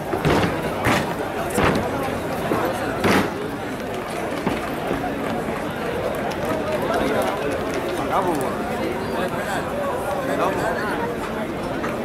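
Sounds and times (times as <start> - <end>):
steady background din: 0.0 - 6.4.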